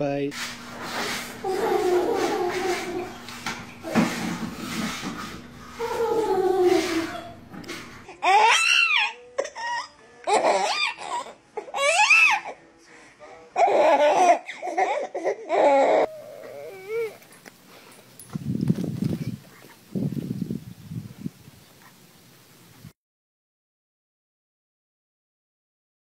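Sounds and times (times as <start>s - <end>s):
room noise: 0.2s - 8.1s
babies squealing and laughing: 1.0s - 4.2s, 5.6s - 12.6s, 13.6s - 17.4s
toddlers giggling and chattering: 1.0s - 8.4s.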